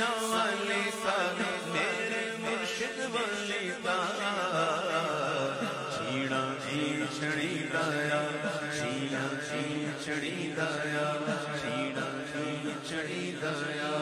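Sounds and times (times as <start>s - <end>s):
man singing into a microphone: 0.0s - 14.0s
men chanting a drone: 0.0s - 14.0s.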